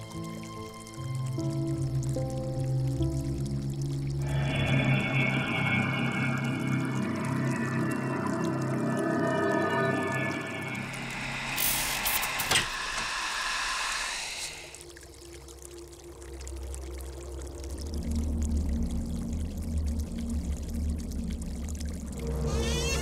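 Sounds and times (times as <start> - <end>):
deep low drone: 2.2 - 15.4
eerie droning tones: 3.8 - 15.1, 22.0 - 23.0
sharp hit: 4.2 - 13.8.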